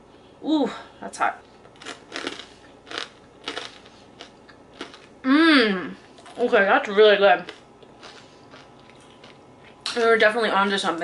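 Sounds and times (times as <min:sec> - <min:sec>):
crisp toast crunching: 0:01.7 - 0:05.2.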